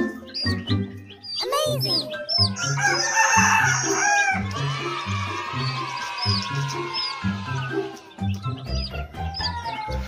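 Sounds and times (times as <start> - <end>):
background music with steady beat: 0.0 - 10.0
rooster crowing: 2.6 - 7.3.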